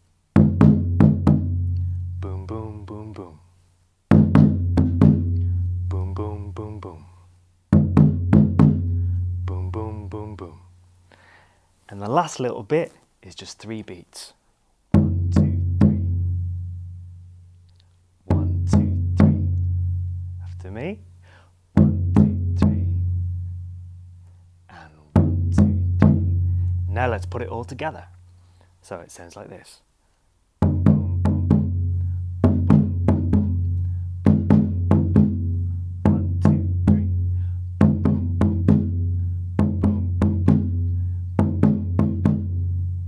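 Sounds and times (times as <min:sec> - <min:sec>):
bass drum struck with stick: 0:00.4 - 0:02.3, 0:04.1 - 0:06.0, 0:07.7 - 0:09.8, 0:15.0 - 0:16.6, 0:18.3 - 0:20.0, 0:21.8 - 0:23.3, 0:25.2 - 0:26.9, 0:30.6 - 0:42.8.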